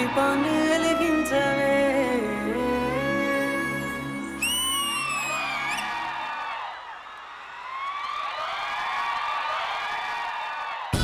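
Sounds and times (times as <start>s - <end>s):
dance music: 0.0s - 6.2s
audience cheering and whooping: 4.2s - 11.0s.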